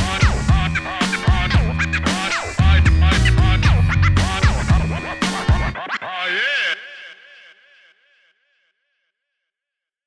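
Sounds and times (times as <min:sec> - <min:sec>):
turntable scratching: 0:00.0 - 0:06.5
hip hop beat: 0:00.0 - 0:06.6.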